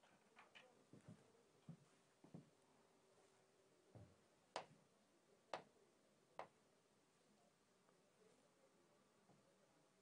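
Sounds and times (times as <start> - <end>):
taps on display screen: 4.0 - 4.8, 5.5 - 5.7, 6.4 - 6.6.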